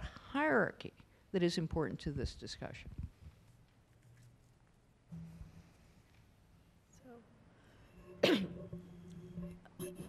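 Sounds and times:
person coughing: 8.2 - 8.6.

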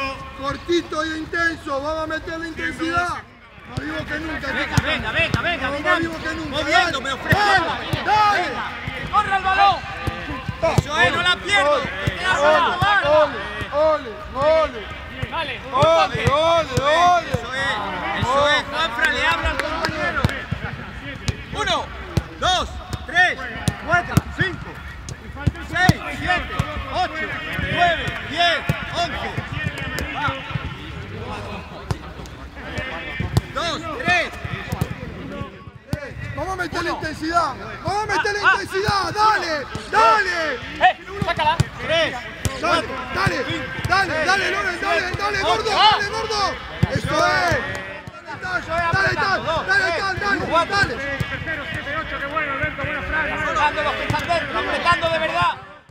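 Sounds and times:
players shouting: 0.0 - 55.9
footballs being kicked: 2.8 - 37.4, 38.5 - 55.9
football kicks thudding: 31.8 - 36.3.

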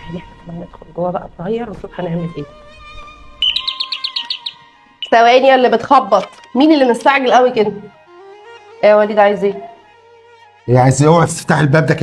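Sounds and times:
soft background music: 0.0 - 12.0
bird-tweet doorbell chirps: 3.4 - 5.4.

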